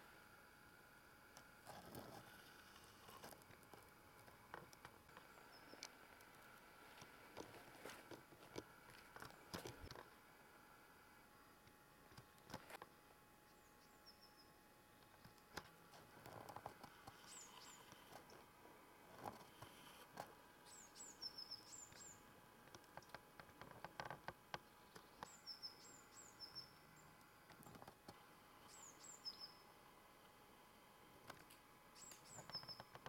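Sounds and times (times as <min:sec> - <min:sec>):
small bird chirping: 0:05.2 - 0:05.9, 0:13.4 - 0:15.2, 0:17.0 - 0:18.5, 0:20.6 - 0:22.3, 0:24.6 - 0:27.8, 0:28.6 - 0:29.7, 0:31.9 - 0:33.0.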